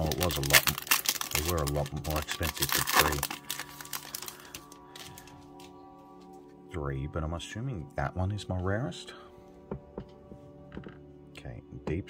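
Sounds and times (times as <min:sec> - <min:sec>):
foil wrapper crinkling: 0:00.0 - 0:05.8
quiet background music: 0:00.0 - 0:12.0.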